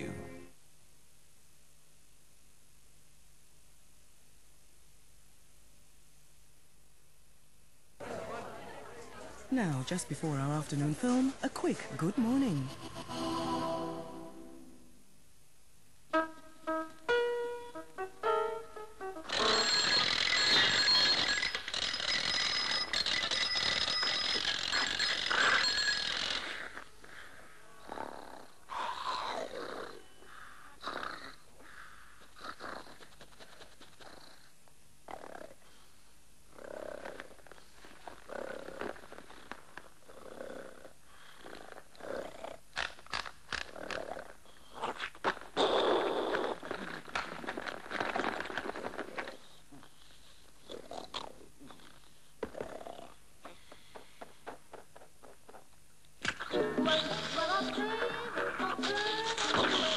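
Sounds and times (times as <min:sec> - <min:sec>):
alarm clock ringing: 0:19.3 - 0:26.6
cartoon cat snoring: 0:19.3 - 0:26.9, 0:27.8 - 0:31.8, 0:32.4 - 0:34.5, 0:35.1 - 0:35.8, 0:36.5 - 0:37.6, 0:38.3 - 0:39.0, 0:40.1 - 0:42.6, 0:43.7 - 0:45.0, 0:45.6 - 0:47.0, 0:49.9 - 0:53.9, 0:56.9 - 0:59.9.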